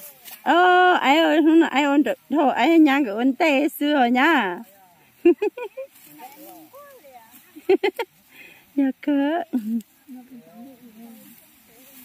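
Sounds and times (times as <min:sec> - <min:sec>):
steady high hiss: 0:00.0 - 0:12.0
faint talking: 0:09.9 - 0:12.0.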